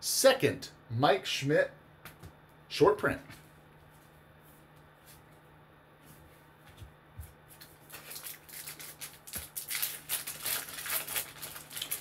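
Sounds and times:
wrapper crinkling: 0:07.6 - 0:12.0.

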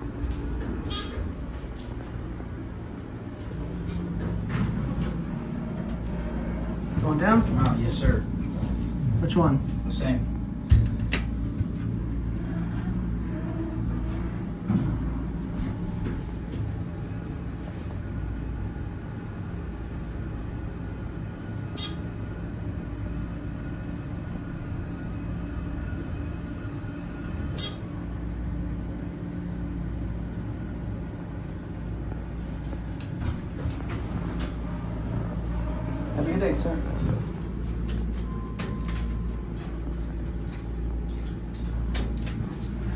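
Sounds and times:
elevator hum and rumble: 0:00.0 - 0:42.9.

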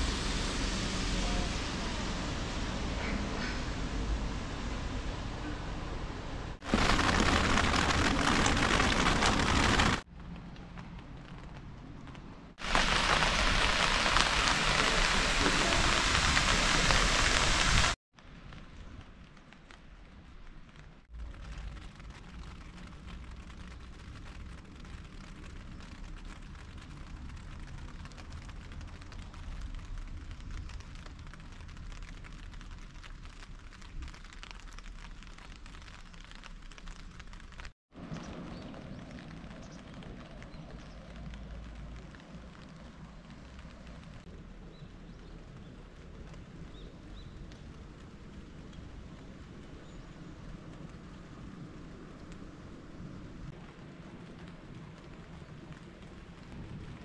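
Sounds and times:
light rain on wet ground: 0:00.0 - 0:57.0
wind rumble on microphone: 0:38.0 - 0:57.0.

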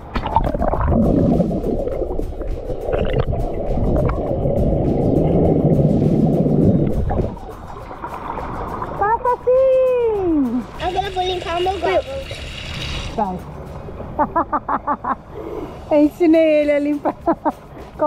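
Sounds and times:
muffled underwater water rush: 0:00.0 - 0:09.1
person speaking: 0:09.0 - 0:12.5.

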